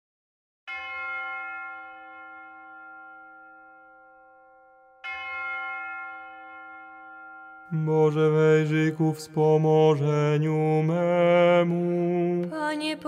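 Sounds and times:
bell ringing: 0.7s - 9.4s.

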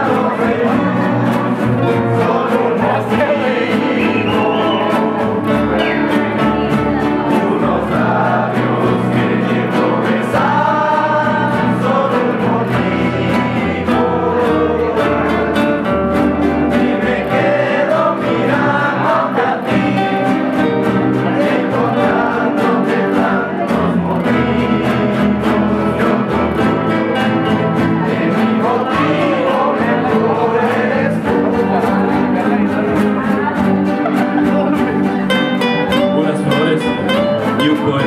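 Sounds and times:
young men singing together: 0.0s - 35.2s
strummed acoustic guitars: 0.0s - 38.0s
upright bass: 0.0s - 38.0s.

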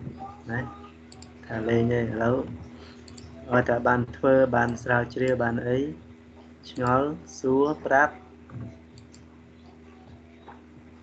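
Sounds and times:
steady low hum: 0.0s - 11.0s
man speaking: 0.2s - 2.6s, 3.4s - 6.0s, 6.6s - 8.2s.

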